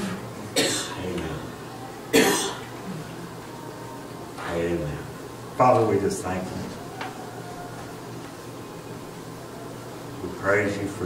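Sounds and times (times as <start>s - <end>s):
person coughing: 0.6s - 1.0s, 2.1s - 2.6s.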